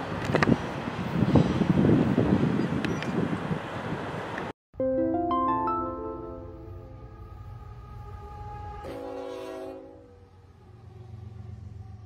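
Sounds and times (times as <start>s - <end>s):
locomotive air horn chord: 5.9s - 11.4s
low rumble of train rolling past: 6.4s - 12.0s.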